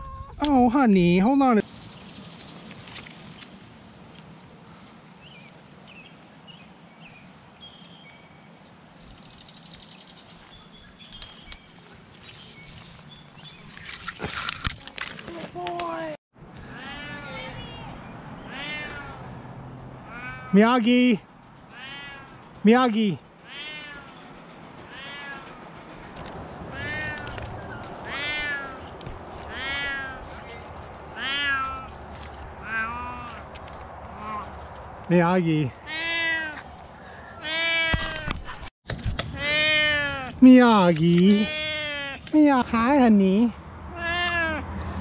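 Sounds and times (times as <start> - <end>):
cat meowing: 16.6 - 17.7, 18.4 - 19.3, 20.0 - 20.6, 21.7 - 22.4, 23.4 - 24.2, 24.8 - 25.6, 26.7 - 28.9, 29.5 - 30.4, 31.2 - 31.9, 32.6 - 33.4, 34.2 - 34.5, 35.8 - 36.6, 37.4 - 38.3, 39.4 - 40.4, 41.3 - 42.3, 43.9 - 44.6.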